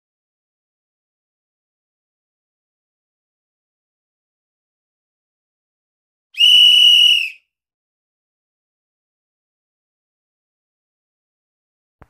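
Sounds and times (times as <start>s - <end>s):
loud whistle blast: 6.4s - 7.4s.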